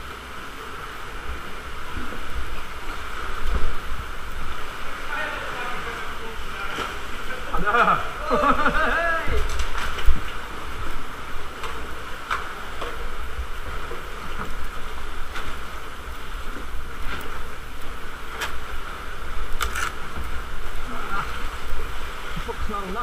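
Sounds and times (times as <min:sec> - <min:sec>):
continuous low rumble: 0:00.0 - 0:23.0
paddle splashing water: 0:00.0 - 0:23.0
sea water lapping against rock: 0:00.0 - 0:23.0.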